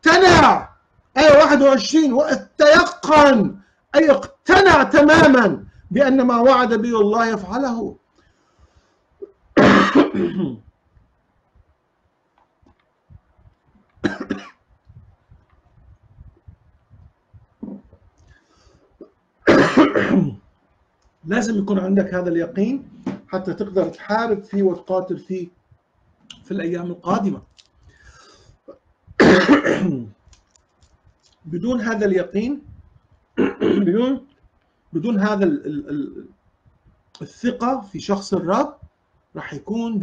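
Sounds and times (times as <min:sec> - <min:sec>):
man coughing: 0:09.6 - 0:10.6, 0:14.0 - 0:14.6, 0:19.5 - 0:20.4, 0:29.2 - 0:30.1, 0:33.4 - 0:34.1
man clearing his throat: 0:09.6 - 0:10.7, 0:14.0 - 0:14.6, 0:19.5 - 0:20.4, 0:29.2 - 0:30.1, 0:33.4 - 0:34.1.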